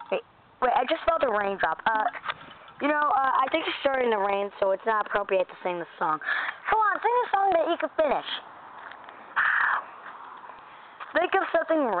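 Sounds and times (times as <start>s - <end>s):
crow cawing: 9.4s - 10.0s.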